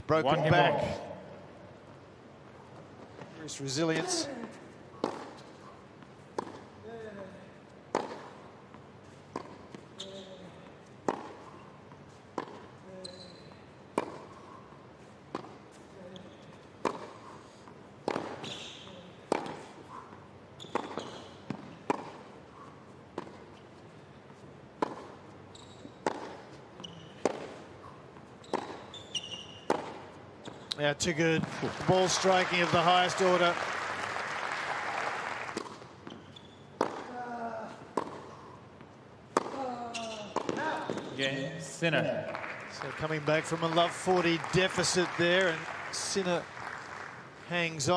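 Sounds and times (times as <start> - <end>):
tennis balls struck with rackets: 4.0 - 6.8, 7.8 - 9.9, 10.9 - 13.3, 13.9 - 14.6, 15.2 - 15.8, 16.8 - 22.5, 23.1 - 23.6, 24.7 - 30.7, 35.5 - 36.2, 36.8 - 41.2.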